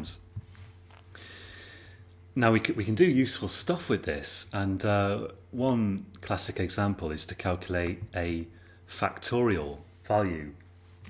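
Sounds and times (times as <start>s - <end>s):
man speaking: 0.0s - 0.3s, 2.4s - 10.6s
low steady hum: 0.0s - 11.0s
quiet breath in: 1.1s - 2.1s.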